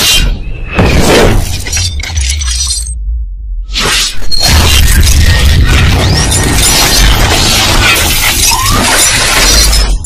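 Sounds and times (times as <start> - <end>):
glass shattering and tinkling: 1.5 - 3.0.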